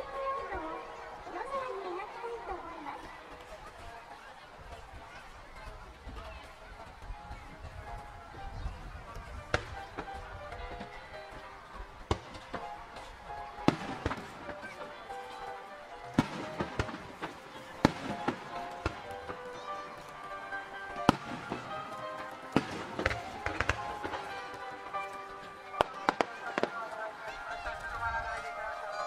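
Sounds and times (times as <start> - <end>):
crowd murmuring: 0.0 - 29.0
show music with sustained tones: 9.5 - 29.0.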